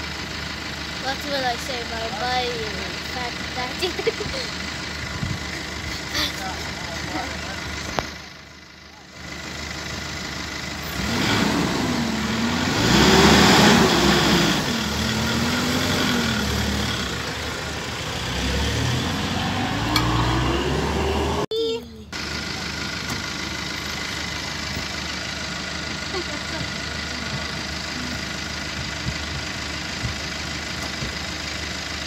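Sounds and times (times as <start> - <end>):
minibus engine revving: 0.0 - 32.0.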